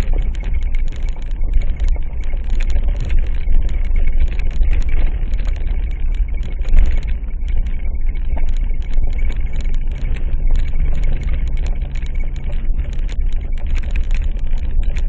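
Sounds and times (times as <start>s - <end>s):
vehicle engine and road rumble: 12.8s - 14.4s.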